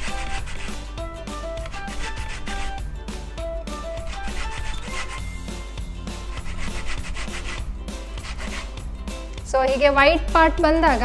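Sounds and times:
orange peel rasping on grater: 0:00.0 - 0:00.9, 0:01.6 - 0:02.8, 0:03.9 - 0:05.4, 0:06.3 - 0:07.6, 0:08.2 - 0:08.8.

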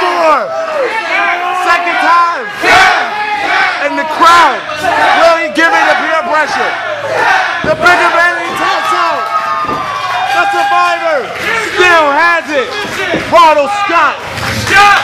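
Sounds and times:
spectators shouting and yelling: 0:00.0 - 0:15.0.

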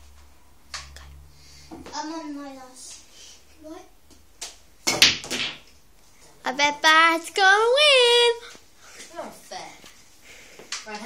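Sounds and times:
pool balls clacking: 0:04.9 - 0:05.7.

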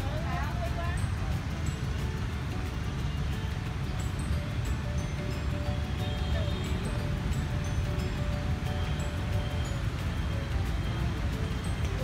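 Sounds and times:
faint music: 0:00.0 - 0:12.0.

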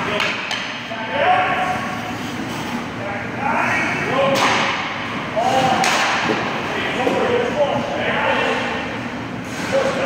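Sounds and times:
hockey puck crack: 0:00.0 - 0:00.8, 0:05.6 - 0:06.5.

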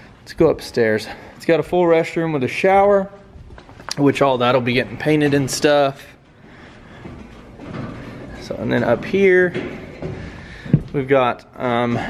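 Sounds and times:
footsteps on metal grating stairs: 0:00.0 - 0:12.0.

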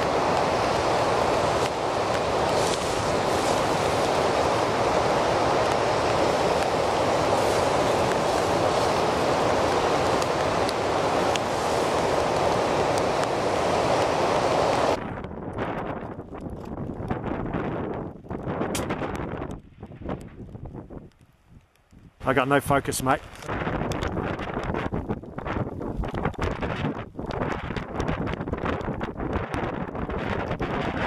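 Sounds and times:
steady rushing noise: 0:00.0 - 0:21.1
wind buffeting microphone: 0:00.0 - 0:31.0.

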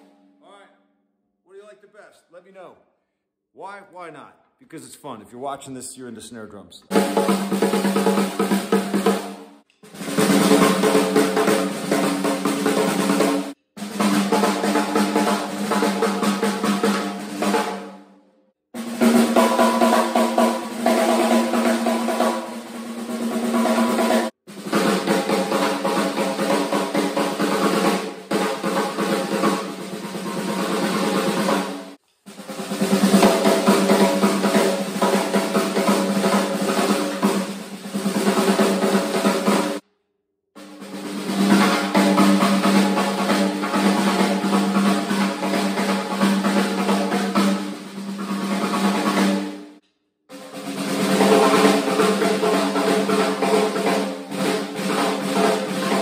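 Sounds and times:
snare drum rolls and strokes: 0:06.9 - 0:18.0, 0:18.8 - 0:39.8, 0:40.6 - 0:56.0.

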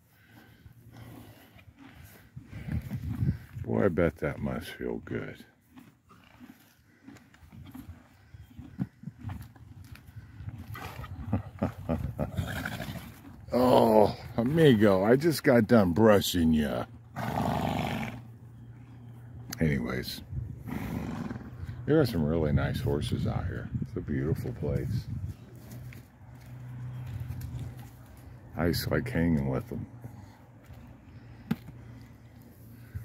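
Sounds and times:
horse rolling in dirt: 0:05.6 - 0:14.3, 0:16.6 - 0:18.6.

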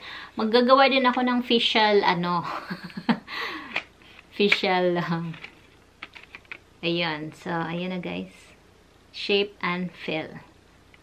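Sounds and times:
plastic blister pack clicking: 0:05.4 - 0:06.6.

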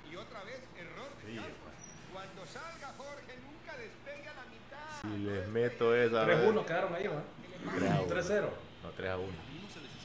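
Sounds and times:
studio conversation: 0:00.0 - 0:10.0
faint man speaking: 0:07.3 - 0:09.4.

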